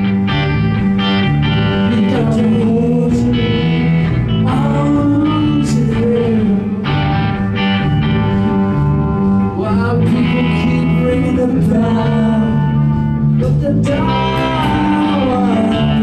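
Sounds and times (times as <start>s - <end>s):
electric guitars: 0.0s - 16.0s
live rock band playing: 0.0s - 16.0s.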